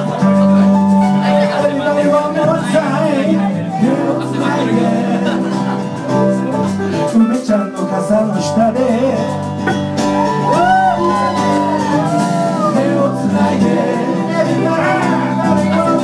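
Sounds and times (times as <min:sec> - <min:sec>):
electric guitar: 0:00.0 - 0:16.0
person singing: 0:00.0 - 0:16.0
strummed acoustic guitar: 0:00.0 - 0:16.0
drum kit: 0:03.8 - 0:16.0.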